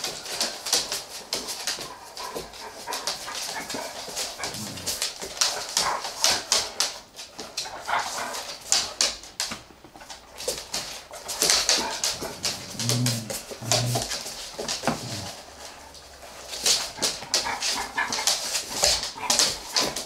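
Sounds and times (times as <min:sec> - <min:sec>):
paws and claws on wooden floor: 0:00.0 - 0:20.0
dog whimpers: 0:12.2 - 0:14.1.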